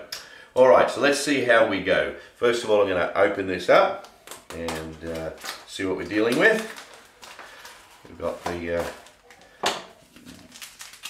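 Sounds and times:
coffee packet rustling: 4.3 - 11.0.

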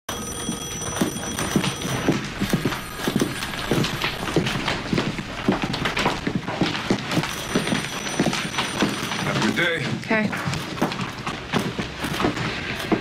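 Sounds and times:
high heel footsteps on hard floor: 0.1 - 13.0.

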